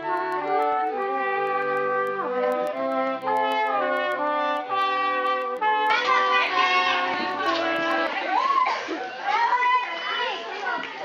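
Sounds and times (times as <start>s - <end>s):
brass instrumental music: 0.0s - 8.4s
children calling and shouting: 4.4s - 11.0s.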